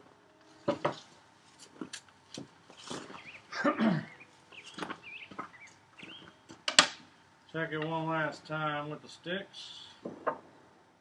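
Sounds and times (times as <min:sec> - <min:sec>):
wooden board and tools knocking: 0:00.6 - 0:01.0, 0:10.0 - 0:10.5
bird chirps: 0:03.0 - 0:06.4.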